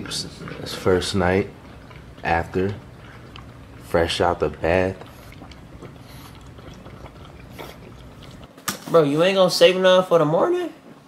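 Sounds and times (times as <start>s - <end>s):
puppy eating wet food: 0.0s - 9.6s.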